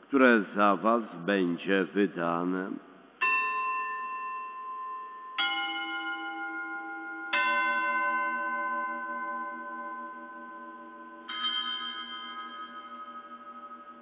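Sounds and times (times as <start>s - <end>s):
altar chime ringing: 3.2s - 14.0s.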